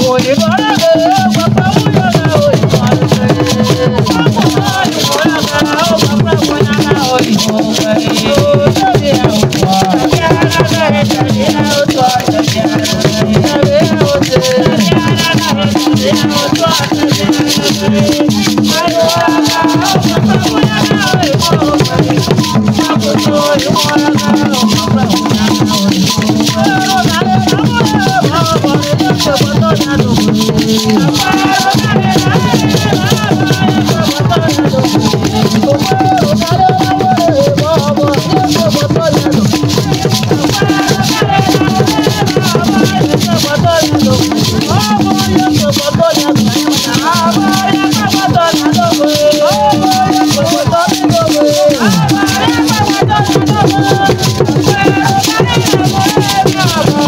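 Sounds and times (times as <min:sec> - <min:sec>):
group of voices singing: 0:00.0 - 0:57.0.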